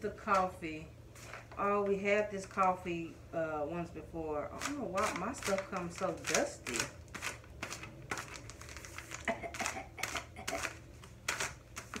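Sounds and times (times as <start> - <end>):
coffee bag wrapping crinkling: 1.2 - 2.7, 4.5 - 12.0.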